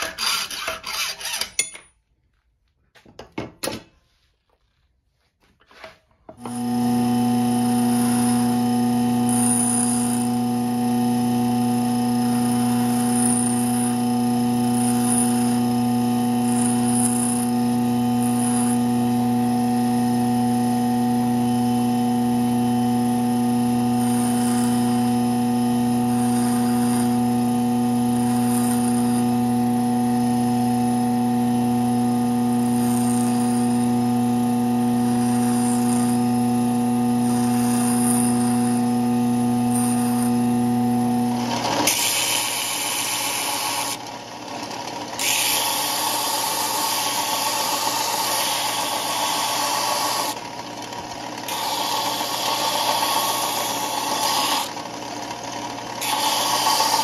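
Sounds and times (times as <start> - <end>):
belt sander rasping on wood: 0.0 - 1.6, 6.4 - 57.0
steel grinding on wheel: 0.0 - 1.9, 6.4 - 57.0
bench grinder motor humming: 6.3 - 57.0.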